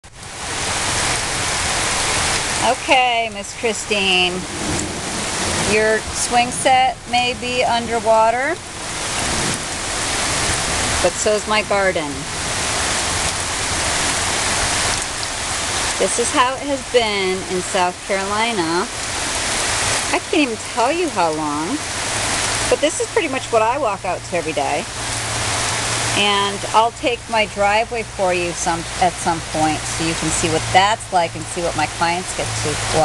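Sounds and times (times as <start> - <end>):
heavy rain on lawn and puddles: 0.0 - 33.0.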